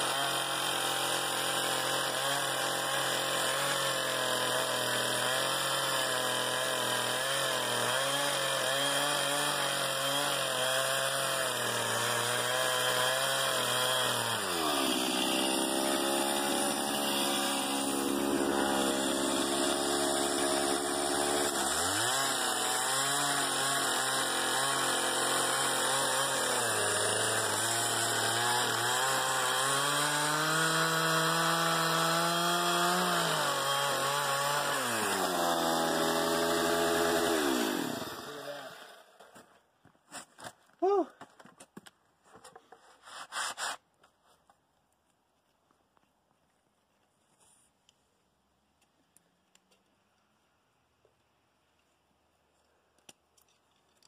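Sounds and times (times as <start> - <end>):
chainsaw cutting log: 0.0 - 39.5, 42.9 - 43.8.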